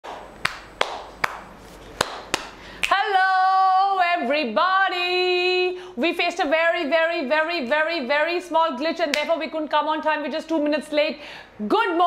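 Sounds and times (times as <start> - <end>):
person clapping hands: 0.0 - 3.0.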